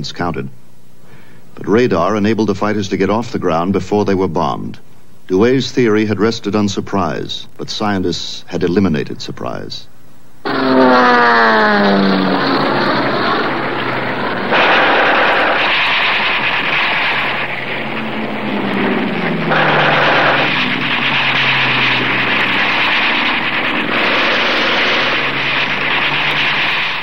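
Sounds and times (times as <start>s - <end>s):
aircraft engines droning: 10.4s - 27.0s
gunfire bursts: 10.5s - 27.0s.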